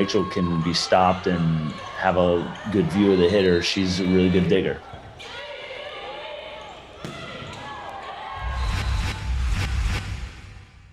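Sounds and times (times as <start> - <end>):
players calling: 0.0 - 8.4
volleyball hits: 6.7 - 8.2.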